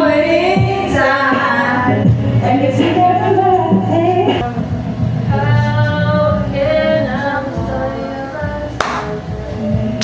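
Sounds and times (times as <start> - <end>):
karaoke song with singing: 0.0 - 10.0
sharp clap-like hit: 8.8 - 9.2.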